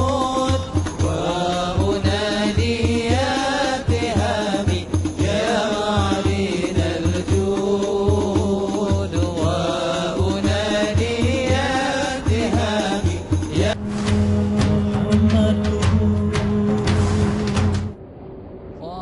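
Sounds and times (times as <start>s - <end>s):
men singing into microphones: 0.0s - 18.0s
steady low beat: 0.0s - 18.3s.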